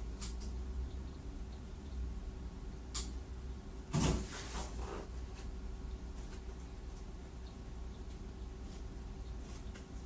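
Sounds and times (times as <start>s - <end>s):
low steady hum: 0.0s - 10.0s
sharp click: 2.9s - 3.2s.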